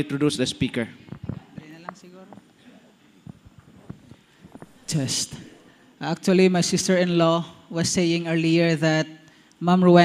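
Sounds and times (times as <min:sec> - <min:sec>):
man speaking into microphone: 0:00.0 - 0:02.5, 0:04.8 - 0:10.0
microphone handling knocks: 0:01.0 - 0:02.5, 0:03.2 - 0:04.9.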